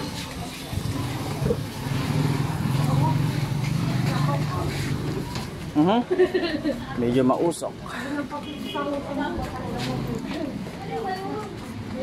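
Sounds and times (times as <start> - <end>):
faint voices: 0.0 - 5.9.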